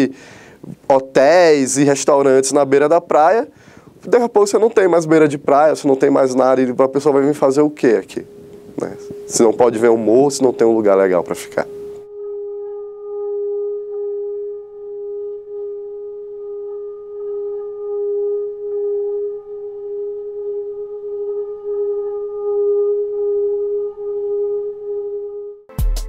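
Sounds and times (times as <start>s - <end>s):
sustained drone tone: 5.5s - 25.7s.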